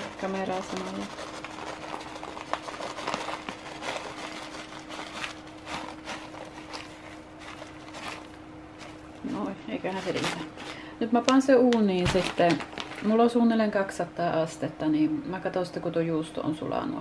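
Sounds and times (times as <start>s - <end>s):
plastic bag crinkling: 0.0s - 13.6s
steady low hum: 0.0s - 17.0s.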